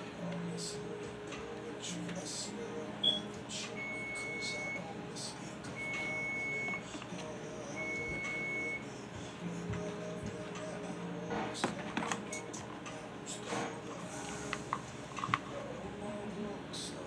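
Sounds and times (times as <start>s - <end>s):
background music: 0.0s - 17.0s
long electronic beeps: 3.0s - 4.9s, 5.7s - 6.9s, 7.7s - 8.9s.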